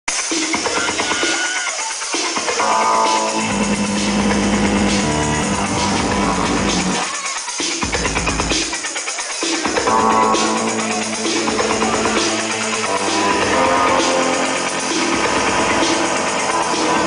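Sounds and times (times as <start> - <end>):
electronic dance music: 0.1 - 17.0
low held bass note: 3.3 - 7.0.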